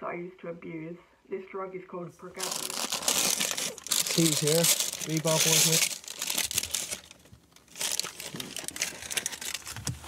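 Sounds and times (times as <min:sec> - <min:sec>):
paper bag crinkling and rustling: 0:02.4 - 0:10.0.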